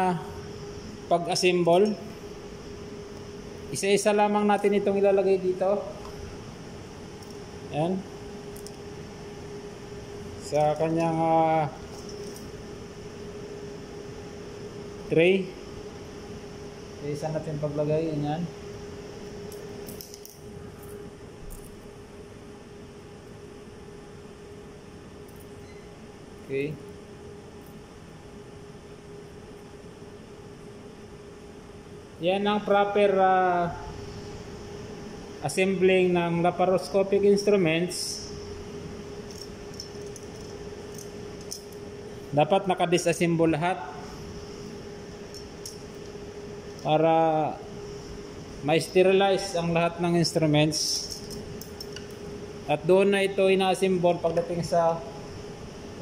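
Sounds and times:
ventilation hum: 0.0s - 56.0s.

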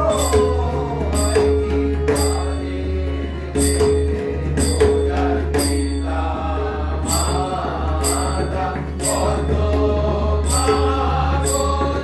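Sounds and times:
ringing percussion strike: 0.0s - 3.0s, 3.6s - 12.0s
sustained held notes: 0.0s - 12.0s
voices chanting: 5.3s - 12.0s.

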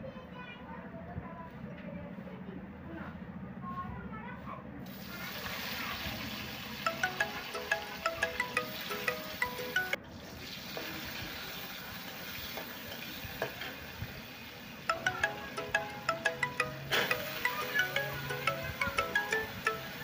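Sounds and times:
food sizzling in hot oil: 4.9s - 14.9s
tinkling chime-like tune: 6.8s - 10.0s, 14.9s - 20.0s.

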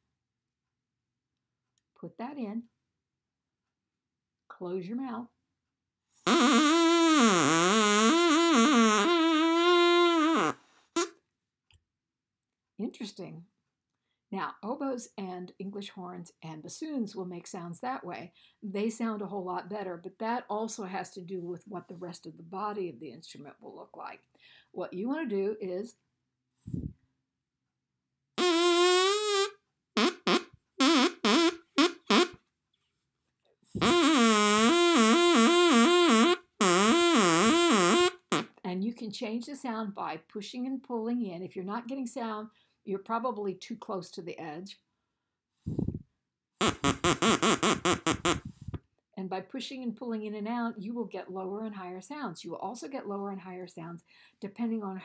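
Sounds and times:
plastic straw reed buzzing: 6.3s - 11.1s, 28.4s - 32.4s, 33.8s - 38.5s, 46.6s - 48.5s.

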